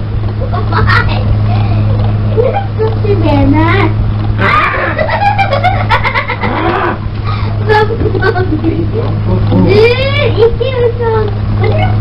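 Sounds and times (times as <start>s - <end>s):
low electrical hum: 0.0s - 12.0s
children talking: 0.5s - 12.0s.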